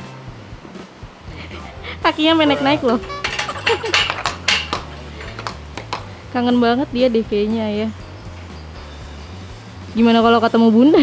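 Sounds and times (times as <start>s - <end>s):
hoof knocking on stall gate: 2.5s - 6.2s.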